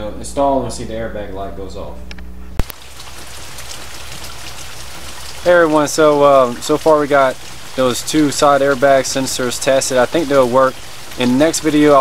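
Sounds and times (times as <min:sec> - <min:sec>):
pouring rain: 0:02.6 - 0:12.0.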